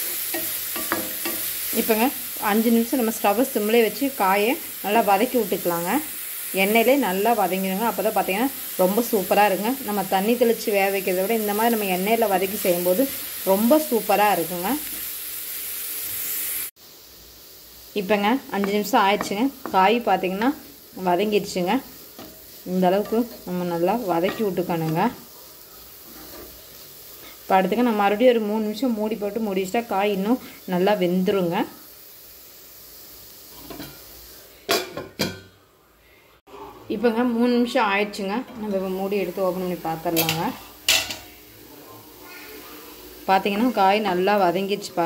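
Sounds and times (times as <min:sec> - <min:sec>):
beetroot sizzling in oil: 0:00.0 - 0:35.8, 0:36.9 - 0:45.0
metal cookware clanks: 0:00.3 - 0:01.5, 0:34.7 - 0:35.5, 0:40.2 - 0:41.4.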